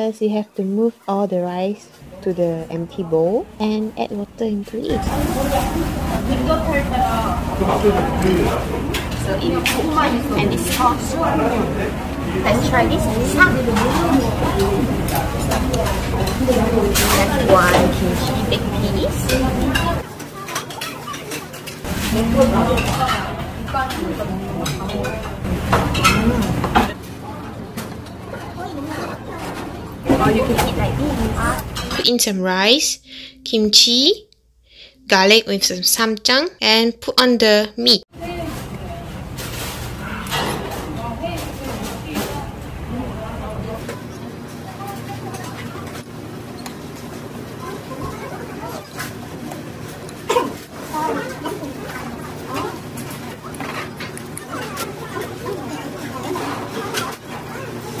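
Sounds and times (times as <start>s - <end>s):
woman talking: 0.0s - 7.6s, 9.2s - 11.6s, 12.4s - 14.5s, 15.8s - 20.0s, 30.1s - 38.7s
muffled voices: 1.8s - 34.1s, 38.2s - 58.0s
steady low hum: 21.8s - 46.5s.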